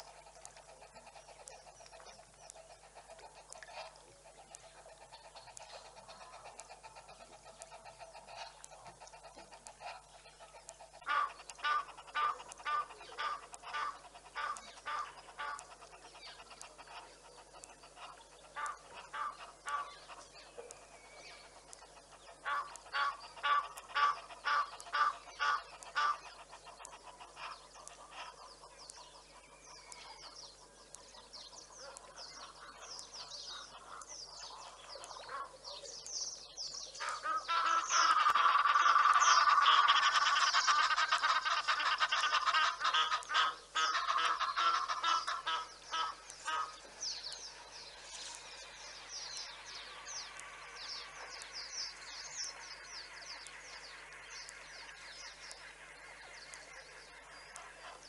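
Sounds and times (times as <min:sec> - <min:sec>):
small birds chirping: 0:00.0 - 0:58.0.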